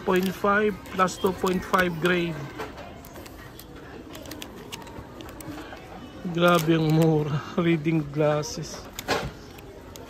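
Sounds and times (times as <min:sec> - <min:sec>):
plastic packaging crinkling: 0:00.0 - 0:07.4
low shop background: 0:00.0 - 0:10.0.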